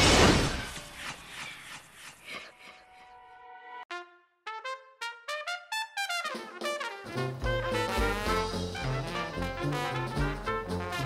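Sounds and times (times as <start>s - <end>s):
solo brass instrument: 3.9s - 11.0s.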